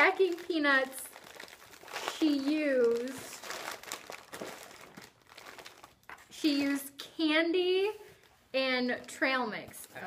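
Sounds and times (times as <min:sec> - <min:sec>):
plastic wrappers crinkling: 0:00.0 - 0:06.8.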